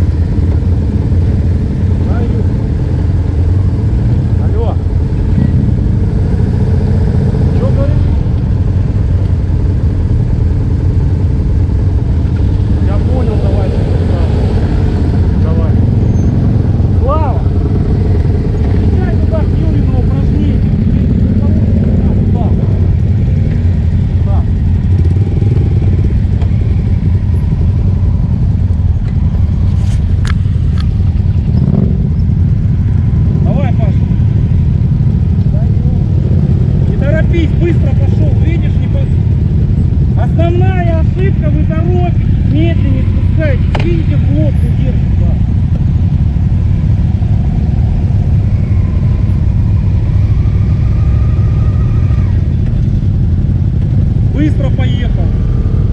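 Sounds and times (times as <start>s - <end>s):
motorcycle engines idling: 0.0s - 55.9s.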